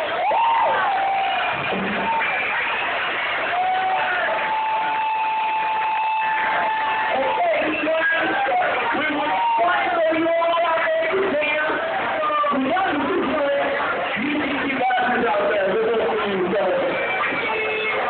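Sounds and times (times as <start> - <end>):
crowd cheering: 0.0 - 18.0.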